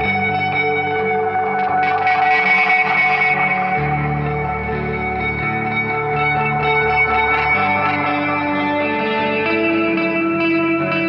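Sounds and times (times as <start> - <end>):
electric guitar chords with effects: 0.0 - 11.0.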